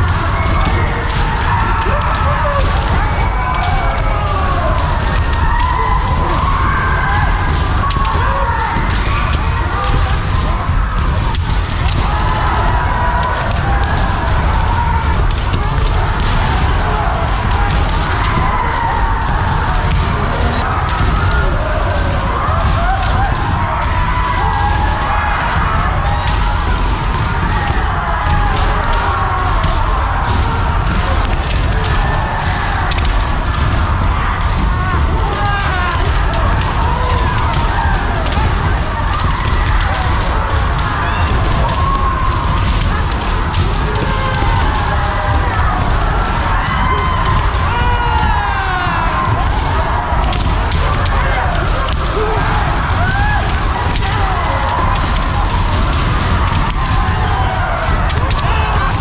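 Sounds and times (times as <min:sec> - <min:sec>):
people shouting long drawn-out shouts: 0:00.0 - 0:59.0.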